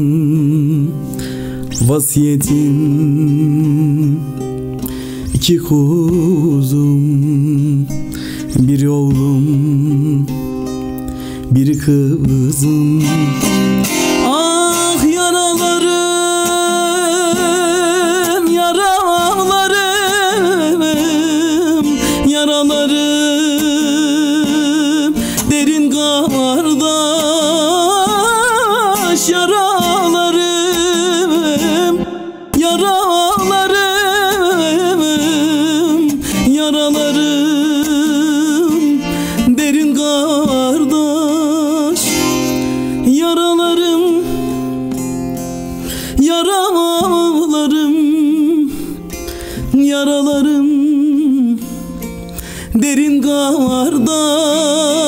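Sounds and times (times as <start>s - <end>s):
long-necked lute strummed: 0.0s - 55.0s.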